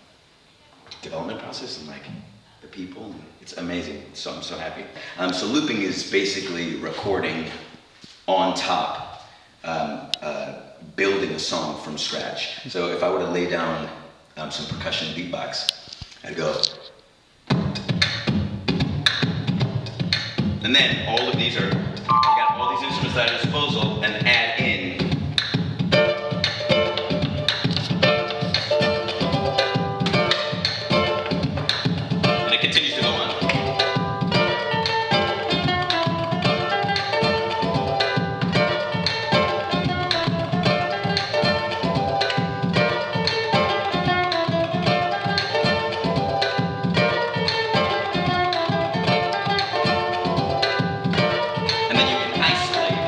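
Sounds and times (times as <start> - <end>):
beatboxed kick and snare: 17.5 - 53.0
ukulele strummed and plucked: 21.1 - 24.4, 25.9 - 53.0.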